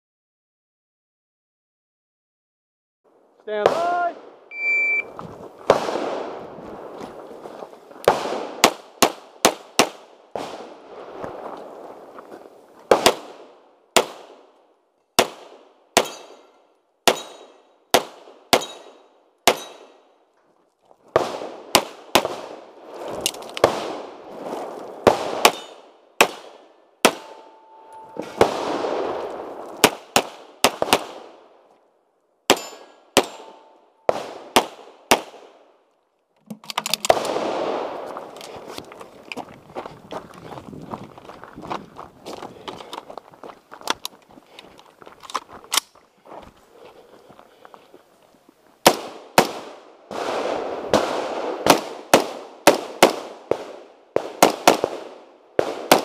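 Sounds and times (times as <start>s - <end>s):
footsteps on gravel: 5.0s - 8.4s, 11.0s - 13.1s, 22.8s - 25.7s, 27.2s - 29.9s, 37.0s - 48.8s
pistol shots: 5.7s - 6.4s, 8.1s - 10.7s, 12.9s - 14.4s, 15.2s - 20.1s, 21.2s - 22.6s, 25.0s - 31.4s, 32.5s - 35.6s, 37.0s - 38.0s, 48.8s - 56.0s
metallic ring of steel targets: 16.0s - 17.6s, 18.6s - 19.9s, 27.2s - 28.3s, 32.5s - 33.8s.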